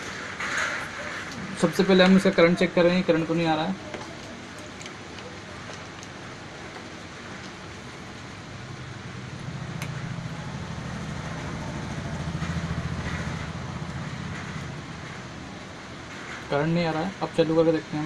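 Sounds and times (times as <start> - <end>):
vehicle engine passing: 8.0 - 16.5.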